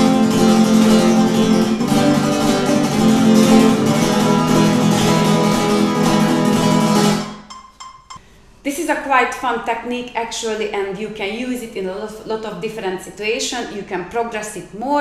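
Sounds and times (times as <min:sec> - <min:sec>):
flamenco guitar strumming: 0:00.0 - 0:08.1.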